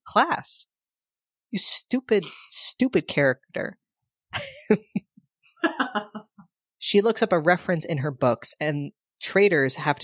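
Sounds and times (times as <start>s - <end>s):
person speaking: 1.6s - 3.8s, 5.6s - 6.4s.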